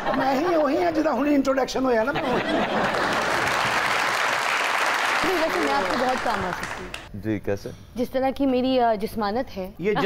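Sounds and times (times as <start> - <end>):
audience applause: 2.6 - 7.1
man speaking: 9.8 - 10.0.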